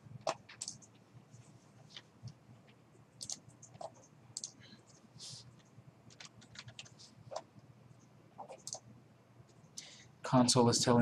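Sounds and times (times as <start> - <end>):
faint computer clicks: 0.2 - 1.0, 3.2 - 5.0, 5.6 - 8.9.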